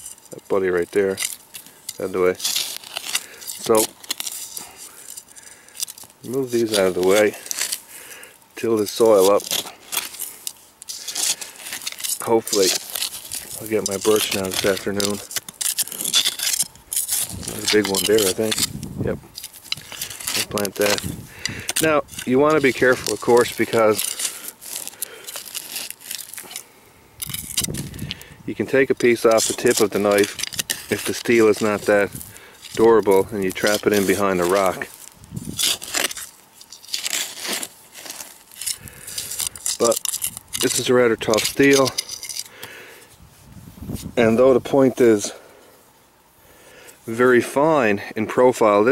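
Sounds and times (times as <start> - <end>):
knife scraping stony soil: 0.0 - 45.4.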